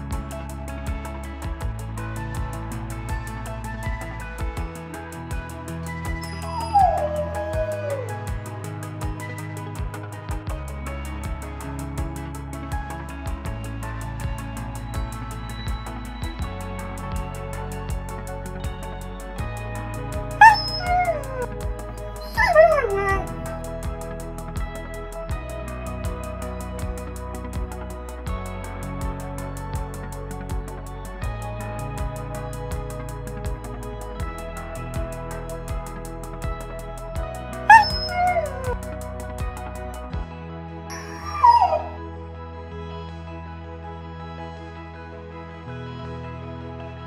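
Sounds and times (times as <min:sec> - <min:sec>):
background music with ticking beat: 0:00.0 - 0:42.0
dog whining: 0:06.2 - 0:08.2, 0:20.4 - 0:21.5, 0:22.2 - 0:23.4, 0:37.7 - 0:38.8, 0:40.9 - 0:42.0.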